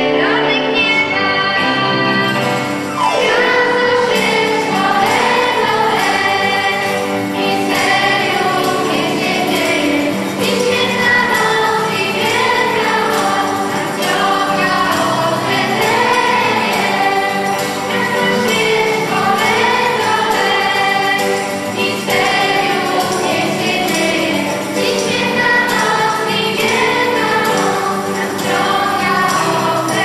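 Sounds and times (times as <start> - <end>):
girl singing a carol: 0.0 - 2.4, 3.2 - 30.0
electronic keyboard: 0.0 - 30.0.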